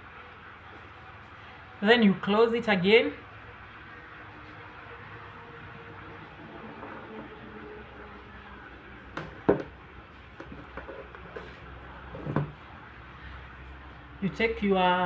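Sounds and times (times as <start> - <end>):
room noise: 0.0 - 14.6.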